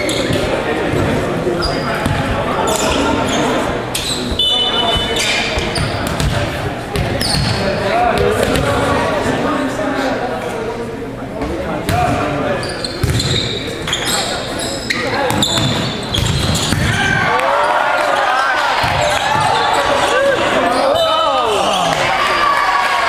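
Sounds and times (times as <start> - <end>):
sneaker squeaks on hardwood: 1.6 - 6.3, 7.0 - 7.6, 12.6 - 17.0
volleyball slaps: 5.6 - 7.5, 15.3 - 17.4
people shouting and cheering: 16.7 - 23.0.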